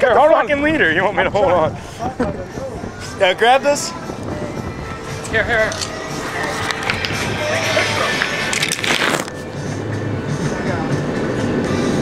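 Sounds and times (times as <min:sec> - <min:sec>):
boat engine drone: 0:00.0 - 0:12.0.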